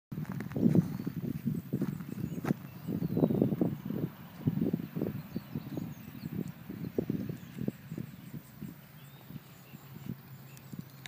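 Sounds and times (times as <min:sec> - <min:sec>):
hooves on dry dirt: 0:00.1 - 0:11.0.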